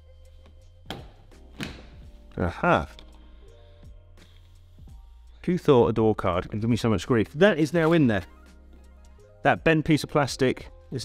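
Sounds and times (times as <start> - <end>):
quiet background music: 0.0 - 11.0
door card knocking into place: 0.9 - 2.0.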